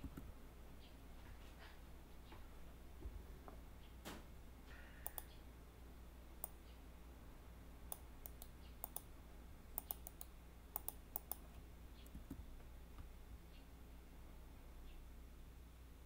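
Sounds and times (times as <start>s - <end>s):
computer keyboard key presses: 7.9s - 9.1s, 9.8s - 11.4s.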